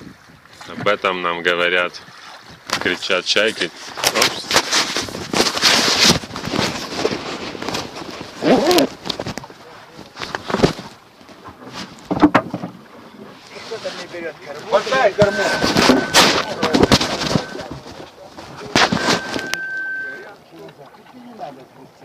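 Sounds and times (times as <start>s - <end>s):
oars splashing in water: 0.0s - 22.0s
rowing boat knocks and clatter: 0.0s - 22.0s.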